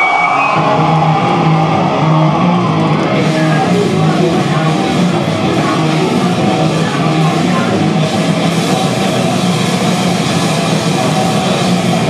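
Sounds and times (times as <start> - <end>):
bass guitar: 0.0 - 12.0
distorted electric guitars: 0.0 - 12.0
drum kit: 0.0 - 12.0.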